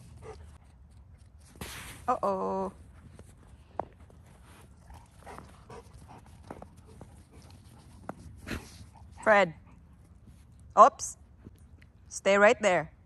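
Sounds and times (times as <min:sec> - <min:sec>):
dogs moving in snow: 0:03.0 - 0:09.0.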